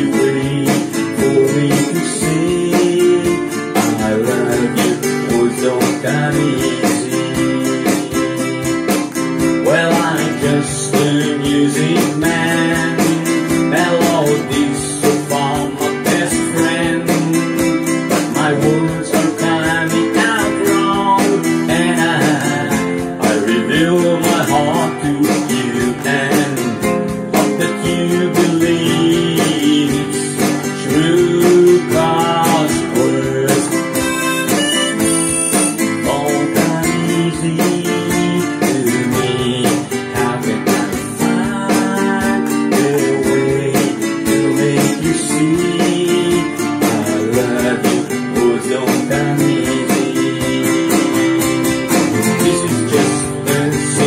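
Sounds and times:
classical guitar strummed: 0.0s - 54.0s
harmonica melody: 33.7s - 36.2s.

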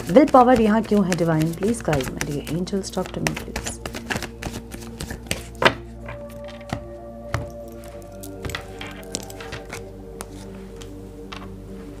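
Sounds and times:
cards being shuffled: 0.0s - 11.5s
soft background music: 0.0s - 12.0s.

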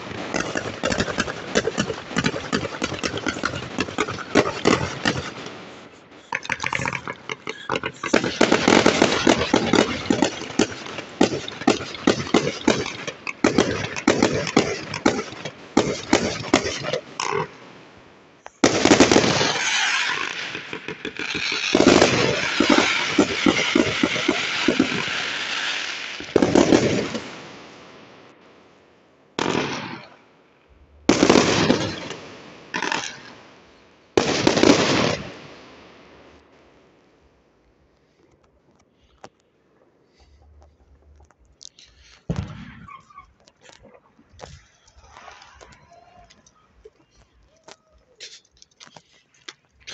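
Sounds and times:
fireworks cracking and bursting: 0.0s - 28.4s, 29.4s - 30.2s, 31.1s - 36.5s, 41.8s - 49.9s.

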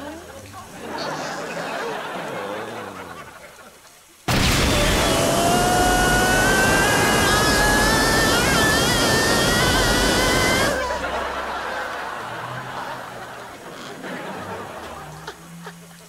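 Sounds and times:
rocket exhaust roar: 4.3s - 13.7s
rising whistling tone: 4.7s - 12.1s.

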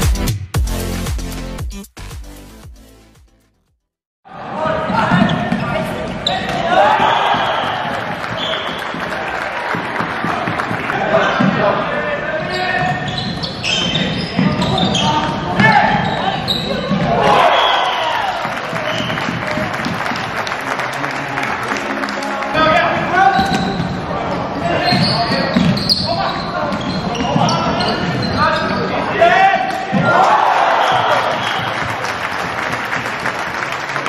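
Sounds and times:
shoes squeaking on floor: 5.0s - 9.0s, 12.4s - 17.2s, 18.8s - 19.4s, 23.3s - 29.1s, 30.8s - 31.9s
players shouting: 6.3s - 11.6s, 14.7s - 19.6s, 29.0s - 32.0s.

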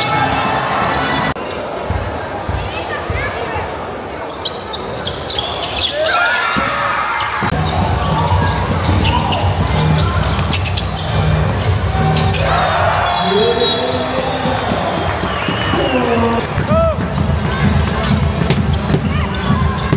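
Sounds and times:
sneakers squeaking: 4.2s - 19.9s.

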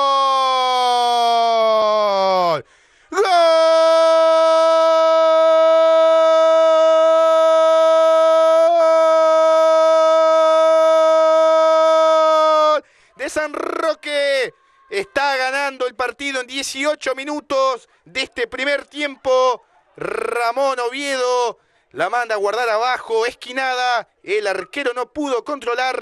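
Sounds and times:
commentator's long goal shout: 3.2s - 17.2s
fast sports commentary: 12.5s - 26.0s.

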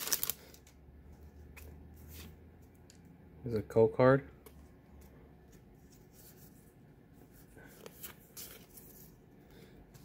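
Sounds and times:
trading cards sliding and flipping: 0.0s - 2.4s.

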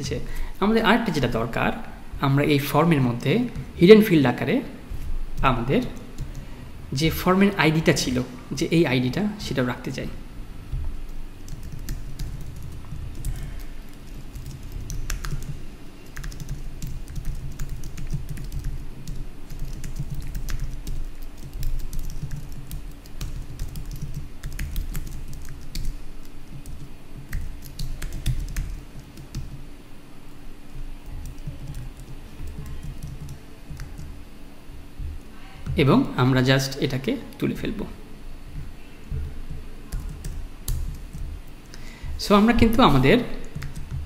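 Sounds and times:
faint steady hum: 0.0s - 44.0s
keyboard typing clicks: 11.5s - 29.6s, 30.8s - 34.2s, 43.4s - 44.0s.

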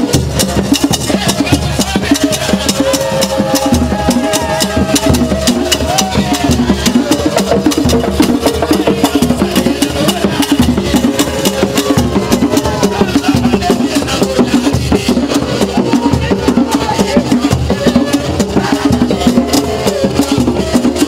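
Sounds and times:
clicking percussion beat: 0.0s - 21.0s
hand drumming: 0.0s - 21.0s
voices singing: 0.0s - 21.0s.

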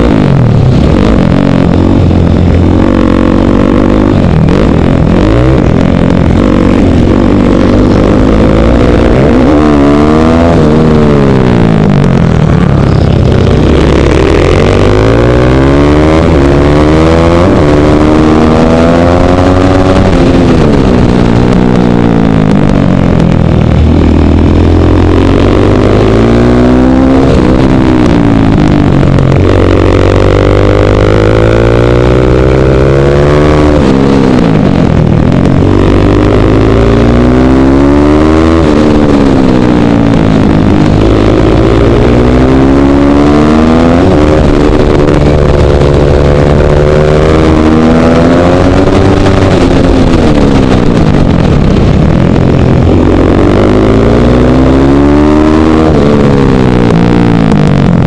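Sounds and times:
motorcycle engine revving hard: 0.0s - 58.0s.

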